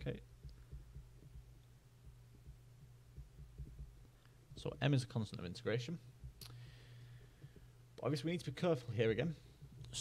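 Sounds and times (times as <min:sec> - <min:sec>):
faint low hum: 0:00.0 - 0:10.0
stylus tapping on drawing tablet: 0:00.4 - 0:04.2, 0:06.2 - 0:07.8.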